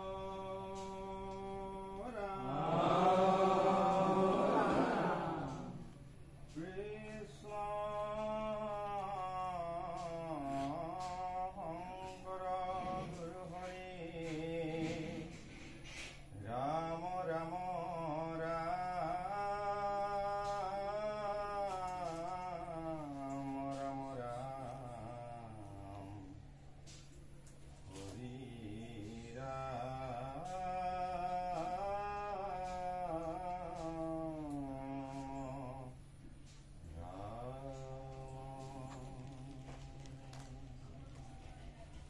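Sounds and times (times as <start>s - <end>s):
man chanting slowly: 0.0s - 41.8s
steady low hum: 0.0s - 42.0s.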